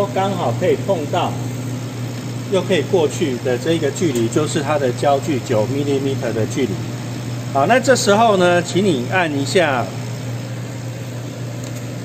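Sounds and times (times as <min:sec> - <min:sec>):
laser cutter humming: 0:00.0 - 0:12.0.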